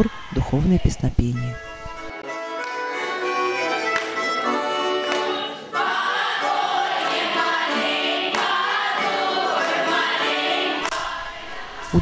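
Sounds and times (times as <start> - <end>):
choir of young voices singing: 4.4 - 12.0.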